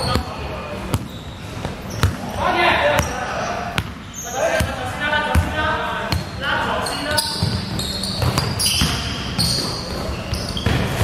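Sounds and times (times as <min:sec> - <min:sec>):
basketball bouncing on hardwood: 0:07.4 - 0:09.6.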